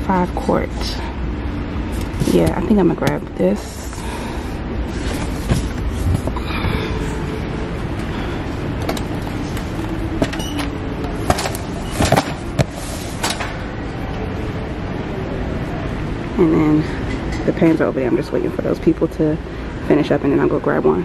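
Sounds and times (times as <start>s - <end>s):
shopping cart rolling: 8.8s - 13.6s.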